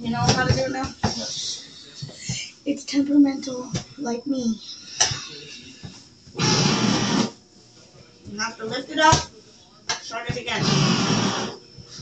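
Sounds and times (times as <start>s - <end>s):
electric can opener motor grinding: 6.4s - 7.4s, 10.4s - 11.6s.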